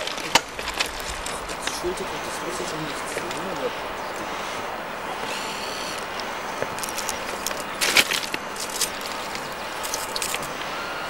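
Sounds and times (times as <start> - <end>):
distant steam locomotive rushing: 0.0 - 11.0
sharp crackles and clicks: 6.0 - 10.6.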